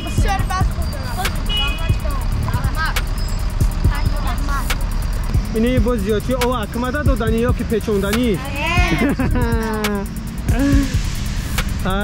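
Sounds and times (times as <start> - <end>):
boys' voices: 0.0 - 11.1
city traffic rumble: 0.0 - 12.0.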